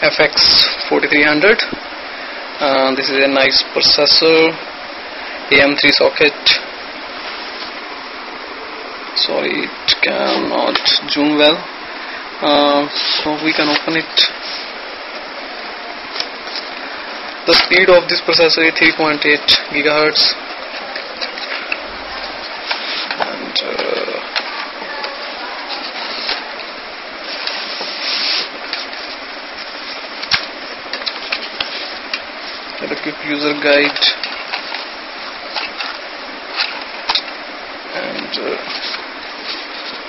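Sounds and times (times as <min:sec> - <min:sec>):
steady background hiss: 0:00.0 - 0:40.0
plastic packaging rustling and clicking: 0:20.2 - 0:40.0.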